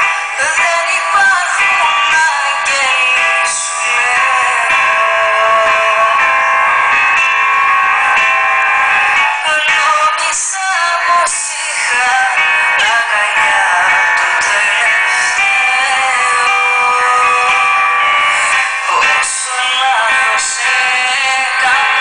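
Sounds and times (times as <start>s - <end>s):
woman singing into microphone: 0.0s - 6.8s, 9.3s - 22.0s
keyboard accompaniment: 0.0s - 22.0s.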